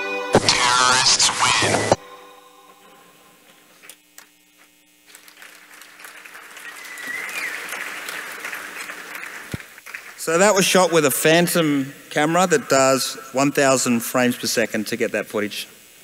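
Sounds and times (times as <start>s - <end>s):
faint electrical hum: 0.4s - 16.0s
audience applauding: 5.0s - 10.8s.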